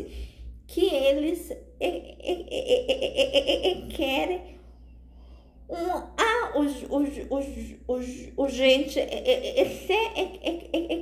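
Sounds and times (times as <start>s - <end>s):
woman laughing: 1.8s - 4.4s, 8.9s - 11.0s.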